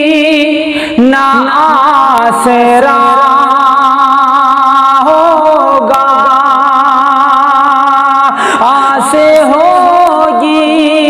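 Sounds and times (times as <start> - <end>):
man singing long note: 0.0 - 11.0.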